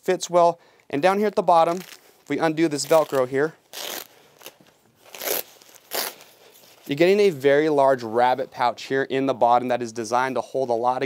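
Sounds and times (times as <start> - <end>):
hook-and-loop fastener ripping: 2.8 - 6.9.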